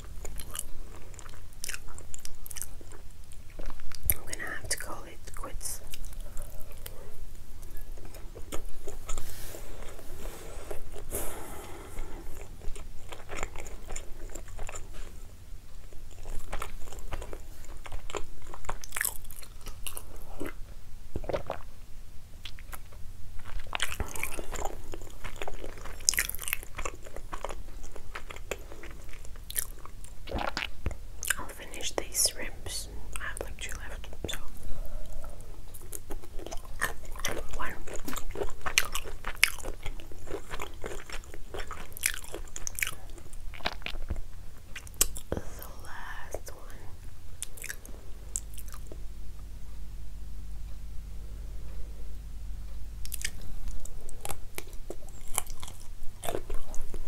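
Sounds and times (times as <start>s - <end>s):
close chewing and biting: 0.0s - 4.2s, 5.8s - 21.7s, 22.4s - 32.1s, 33.1s - 46.8s, 47.4s - 49.0s, 53.0s - 57.0s.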